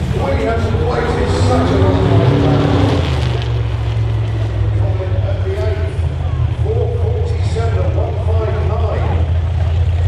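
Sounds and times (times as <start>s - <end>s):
steady low rumble: 0.0s - 7.7s.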